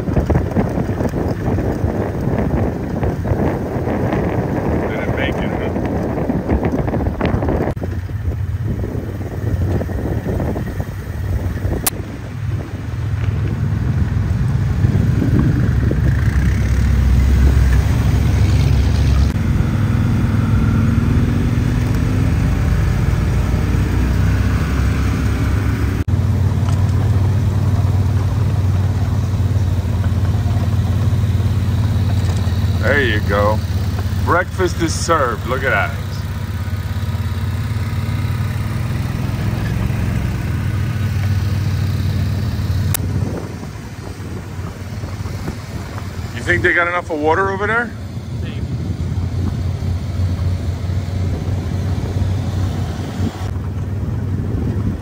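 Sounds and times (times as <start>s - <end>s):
wind on microphone: 0.0s - 26.1s, 38.1s - 47.1s, 47.7s - 55.0s
engine running at low revs: 0.0s - 55.0s.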